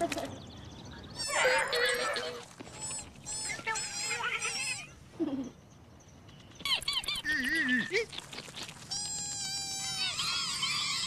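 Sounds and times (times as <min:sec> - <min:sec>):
squeaky cartoon bug voices: 0:01.1 - 0:05.6, 0:06.7 - 0:08.2, 0:08.9 - 0:11.0
chorus of chirping voices cheering: 0:09.7 - 0:11.0.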